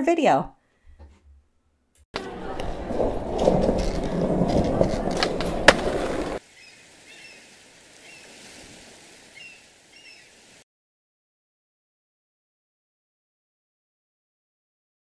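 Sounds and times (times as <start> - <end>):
skateboard wheels rolling: 2.2 - 6.4.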